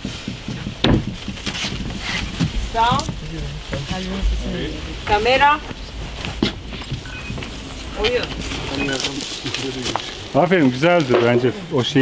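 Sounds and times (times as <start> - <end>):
low talk: 2.6 - 12.0.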